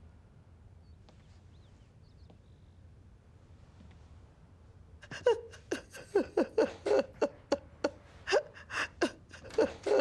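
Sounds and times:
woman sobbing: 5.0s - 10.0s.

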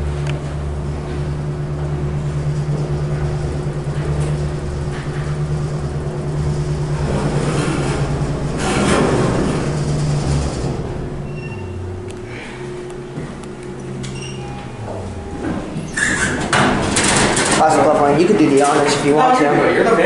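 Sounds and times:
elevator hum with rumble: 0.0s - 20.0s.

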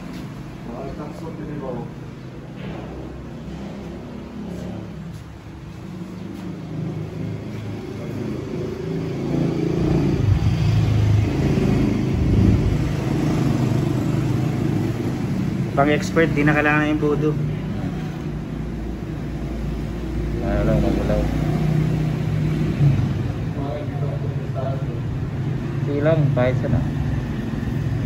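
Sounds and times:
vehicle engine rumbling: 0.0s - 28.0s.

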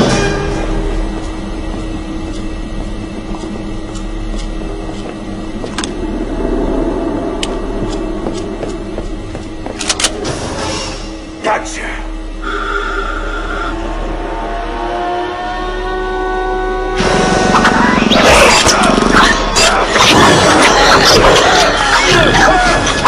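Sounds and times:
background film music: 0.0s - 23.0s
steady low drone: 0.0s - 23.0s.

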